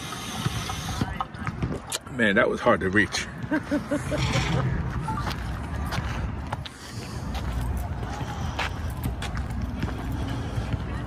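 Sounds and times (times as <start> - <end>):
footsteps on paved path: 0.0 - 2.2, 2.8 - 11.0.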